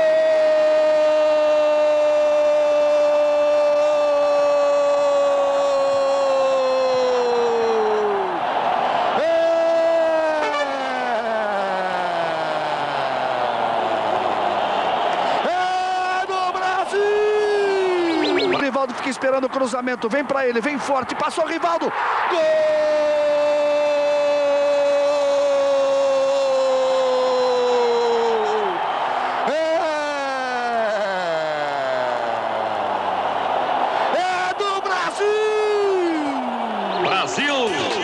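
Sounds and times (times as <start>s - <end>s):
stadium crowd cheering: 0.0s - 38.0s
commentator shouting: 9.2s - 13.5s, 34.1s - 38.0s.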